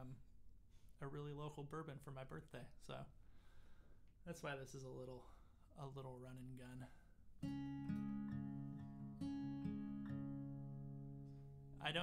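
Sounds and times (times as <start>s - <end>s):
acoustic guitar picked: 7.4s - 12.0s.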